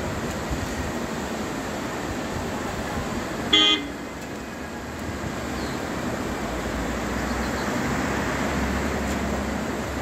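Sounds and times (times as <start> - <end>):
vehicle horn toot: 3.5 - 4.0.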